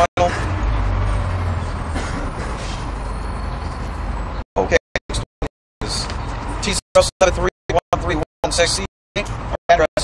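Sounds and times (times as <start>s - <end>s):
street traffic rumble and hiss: 0.2s - 5.2s, 5.8s - 9.8s.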